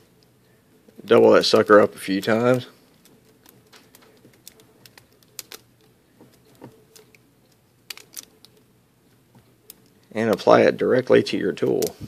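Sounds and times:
rubber band rubbing and clicking: 1.4s - 10.5s.

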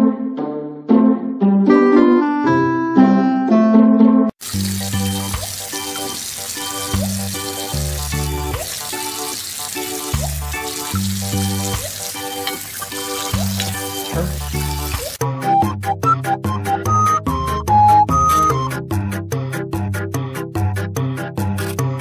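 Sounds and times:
tap running into sink: 4.5s - 14.3s
background music with bass line: 13.0s - 22.0s.

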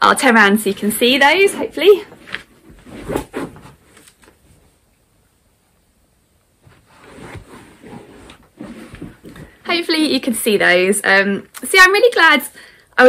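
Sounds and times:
person shifting on fabric sofa: 2.1s - 4.8s, 6.6s - 9.7s.

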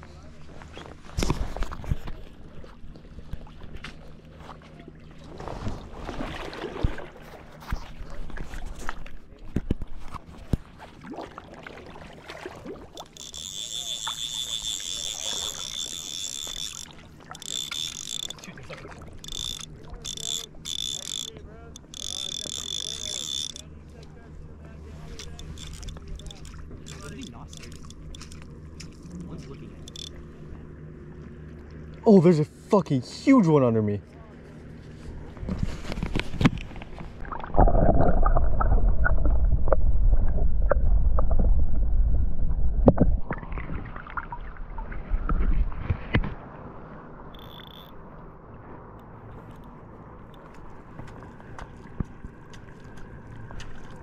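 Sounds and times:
fly reel clicker buzzing: 12.9s - 18.5s, 19.1s - 23.7s, 25.1s - 28.3s, 29.8s - 30.2s, 47.3s - 48.0s.

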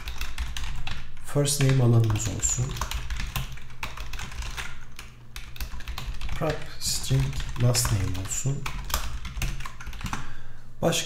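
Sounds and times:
computer keyboard typing: 0.0s - 10.3s.

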